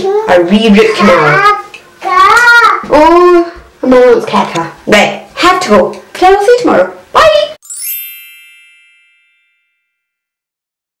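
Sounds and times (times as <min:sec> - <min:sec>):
bright bell-like chime: 0:07.6 - 0:10.4.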